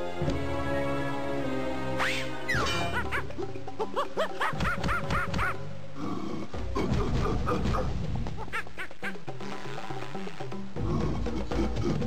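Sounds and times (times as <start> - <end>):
background music score: 0.0 - 12.0
cartoon monkey chattering: 6.8 - 9.6.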